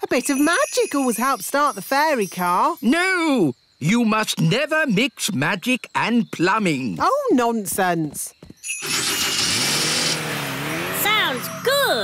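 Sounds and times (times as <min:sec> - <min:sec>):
sparkly hiss: 0:00.0 - 0:03.4.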